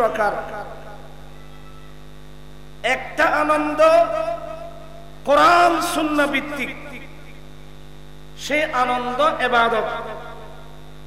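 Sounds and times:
electrical mains hum: 0:00.0 - 0:11.0
man speaking: 0:02.8 - 0:07.2, 0:08.4 - 0:10.5.

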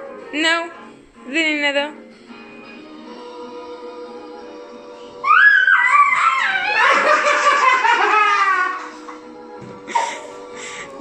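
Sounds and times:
soft background music: 0:00.0 - 0:11.0
child squealing laughter: 0:05.2 - 0:08.8.

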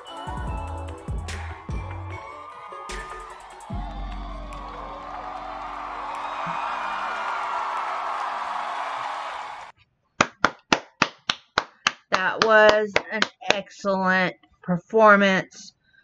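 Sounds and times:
dance music: 0:00.0 - 0:06.6
audience cheering: 0:00.6 - 0:09.7
person clapping hands: 0:04.2 - 0:13.6.

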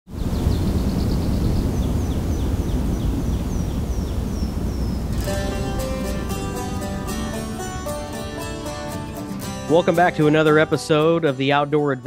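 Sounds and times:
bird chirping: 0:00.1 - 0:09.4
low outdoor rumbling: 0:00.2 - 0:09.7
plucked acoustic guitar music: 0:05.1 - 0:12.0.

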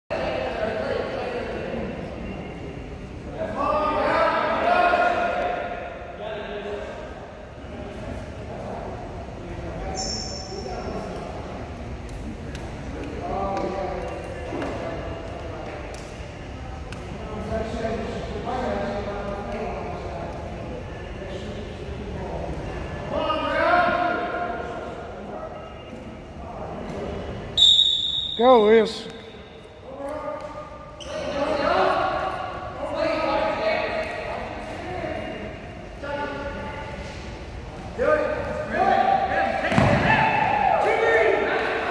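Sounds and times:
people shouting in a gymnasium: 0:03.5 - 0:06.2, 0:38.0 - 0:41.9.

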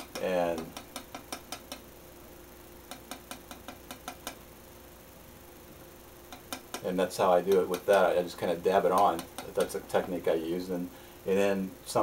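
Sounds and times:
palette knife tapping on canvas: 0:00.0 - 0:01.8.

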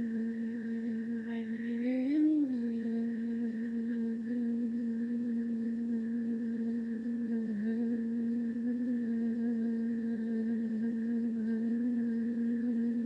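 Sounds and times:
steady hum: 0:00.0 - 0:13.0.

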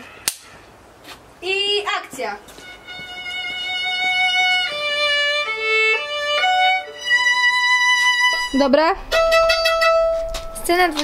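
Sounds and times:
solo violin slow melody: 0:02.6 - 0:10.5.

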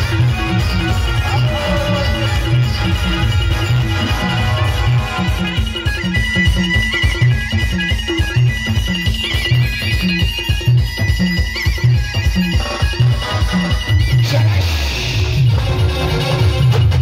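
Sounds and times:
heavy bass beat: 0:00.0 - 0:06.7
high trilling lead melody: 0:00.0 - 0:17.0
loud dance music: 0:00.0 - 0:17.0.

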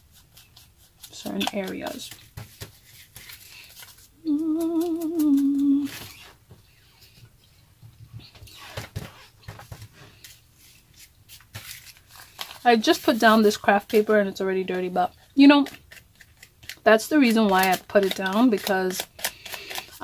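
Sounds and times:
paper rustling and crinkling: 0:00.5 - 0:06.4, 0:08.5 - 0:14.0
woman humming: 0:04.2 - 0:06.0.

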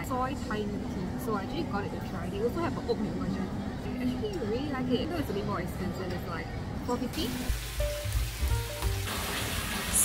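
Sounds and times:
water pouring from tap into tub: 0:07.4 - 0:10.0
background music: 0:07.5 - 0:10.0.

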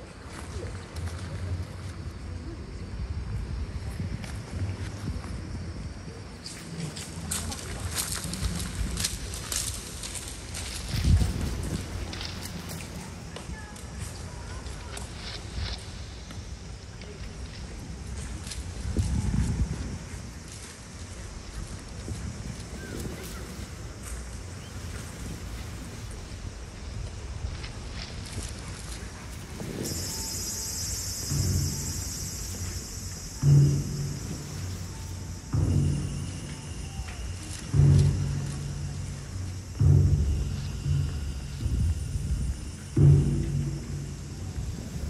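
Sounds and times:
high insect chorus: 0:00.0 - 0:45.0
low rumble: 0:00.0 - 0:45.0
low steady hum: 0:21.3 - 0:45.0
faint thin tone: 0:29.6 - 0:45.0
low deep note: 0:29.8 - 0:45.0.

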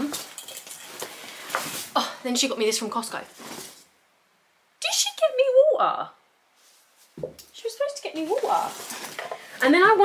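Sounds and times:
packaging rustling: 0:08.2 - 0:09.6.

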